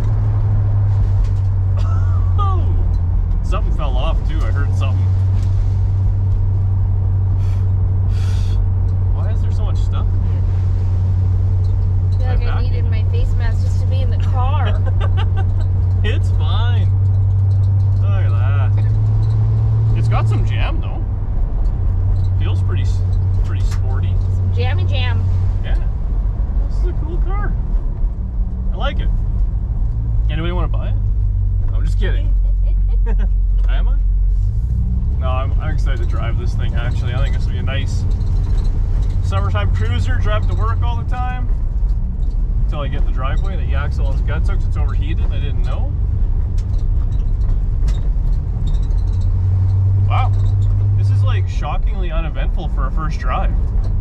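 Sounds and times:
car engine and exhaust droning: 0:00.0 - 0:54.0.

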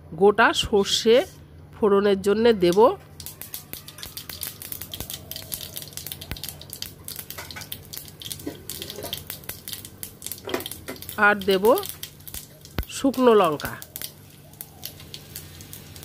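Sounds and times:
seeds sizzling and crackling in oil: 0:02.7 - 0:16.0.

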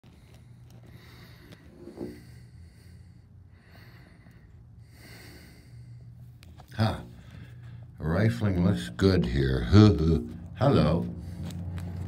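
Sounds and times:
person breathing: 0:00.0 - 0:06.4, 0:07.0 - 0:08.0
low steady hum: 0:00.0 - 0:12.0.

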